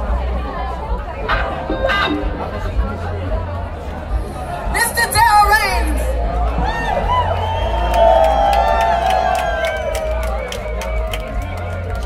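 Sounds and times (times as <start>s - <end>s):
crowd chatter: 0.0s - 12.0s
heavy bass: 0.0s - 12.0s
live blues band playing: 1.2s - 3.1s.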